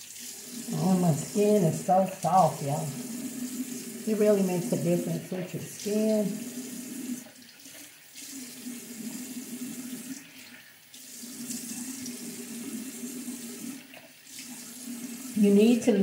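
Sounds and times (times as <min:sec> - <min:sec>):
tap water running into sink: 0:00.0 - 0:16.0.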